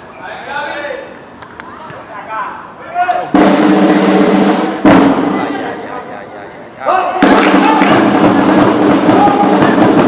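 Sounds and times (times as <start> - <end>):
loud drumming: 3.2 - 5.8, 7.2 - 10.0
people shouting: 9.0 - 10.0.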